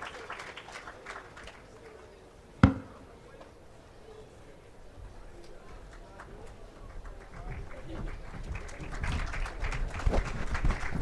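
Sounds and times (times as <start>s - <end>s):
audience applause: 0.0s - 1.6s, 6.9s - 11.0s
murmur of crowd voices: 0.0s - 11.0s.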